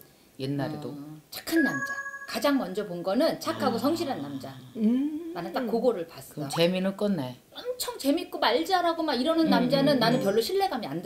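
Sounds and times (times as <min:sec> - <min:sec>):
bright bell-like chime: 0:01.5 - 0:02.8
woman speaking: 0:02.3 - 0:05.7, 0:08.6 - 0:11.0.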